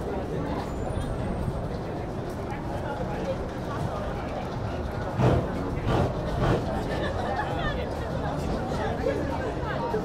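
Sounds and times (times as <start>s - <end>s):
busy pedestrian street noise: 0.0s - 10.0s
people talking: 0.0s - 10.0s.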